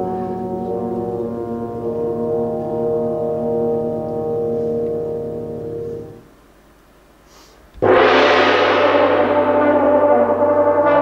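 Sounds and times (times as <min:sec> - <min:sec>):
brass holding a low chord: 0:00.0 - 0:06.4, 0:07.8 - 0:11.0.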